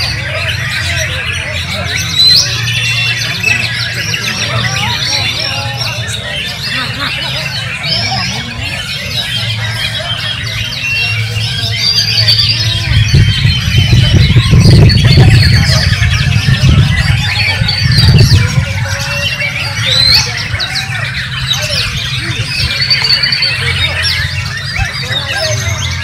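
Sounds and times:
bird whistling and trilling: 0.0s - 26.0s
songbirds singing: 0.0s - 26.0s.

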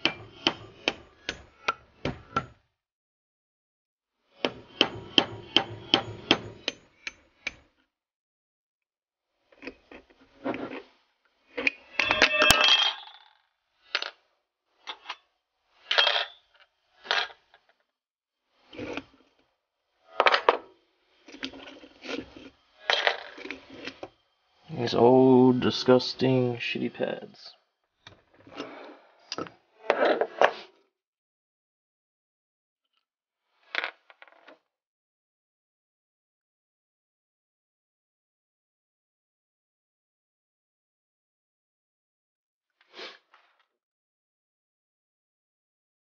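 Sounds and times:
hammer tapping metal: 4.5s - 6.8s.

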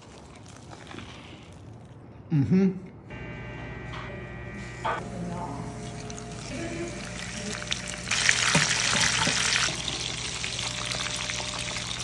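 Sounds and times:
crisp waffle crunching: 0.0s - 2.0s.

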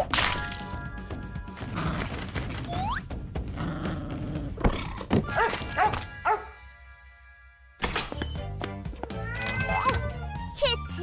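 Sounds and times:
background music: 0.0s - 11.0s
cartoon puppy barking: 5.3s - 6.5s.

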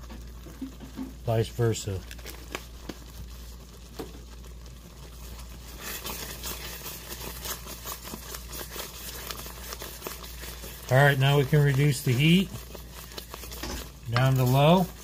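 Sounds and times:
wooden spoon stirring thick sauce: 0.0s - 15.0s.

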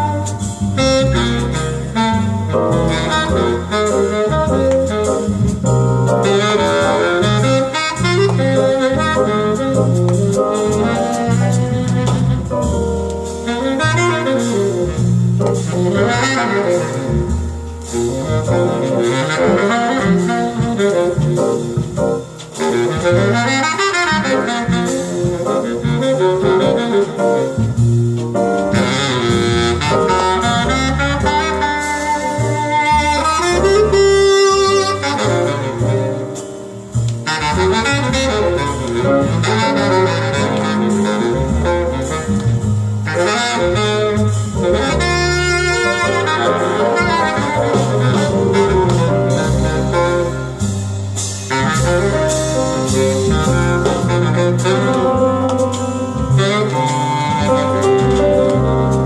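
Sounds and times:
saxophone playing melody: 0.0s - 59.0s
walking double bass line: 0.0s - 59.0s.

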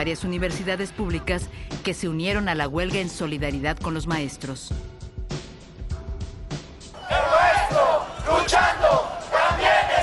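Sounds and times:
crowd shouting together: 7.0s - 10.0s.

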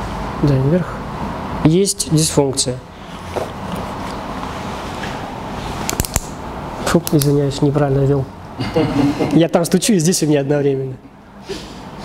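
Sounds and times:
room background noise: 0.0s - 12.0s
sharp clicks: 5.9s - 6.4s, 7.0s - 7.4s.

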